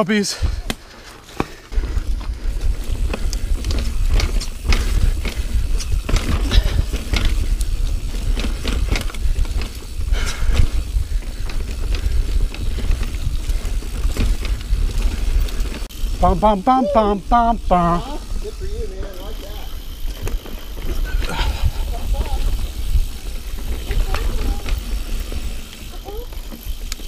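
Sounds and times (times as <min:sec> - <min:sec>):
bike rattling and clicking: 0:00.6 - 0:27.0
wind buffeting microphone: 0:01.8 - 0:16.3, 0:17.0 - 0:27.0
tyres rolling over dirt: 0:17.6 - 0:27.0.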